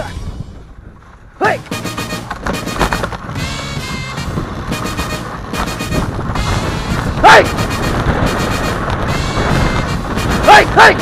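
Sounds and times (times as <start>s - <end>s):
sled knocking and rattling: 0.0s - 11.0s
sled runners scraping snow: 0.1s - 11.0s.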